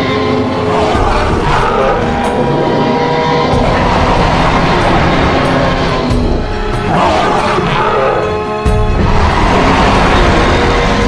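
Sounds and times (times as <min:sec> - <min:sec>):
background music: 0:00.0 - 0:11.0
dinosaur roars and growls: 0:00.0 - 0:11.0.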